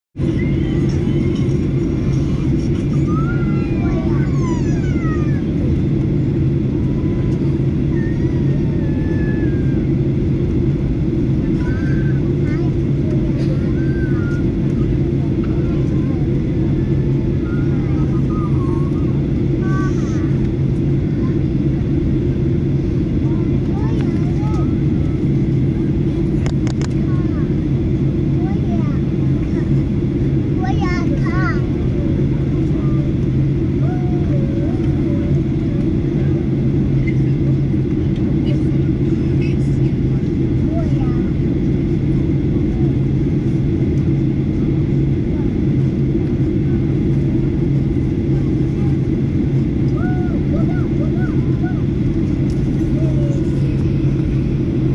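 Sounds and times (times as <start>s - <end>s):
airliner cabin drone: 0.2s - 54.9s.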